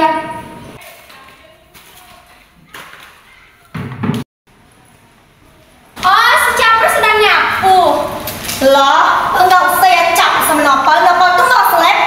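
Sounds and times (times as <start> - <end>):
loud knock: 3.7 - 4.3.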